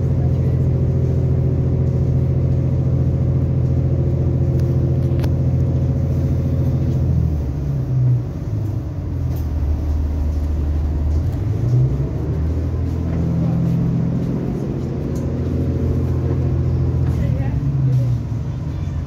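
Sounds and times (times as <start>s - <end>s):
train diesel engine drone: 0.0s - 19.0s.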